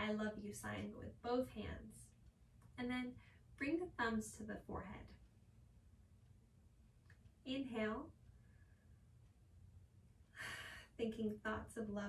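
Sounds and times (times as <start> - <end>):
faint low room hum: 0.0 - 12.0
woman breathing: 10.3 - 11.0.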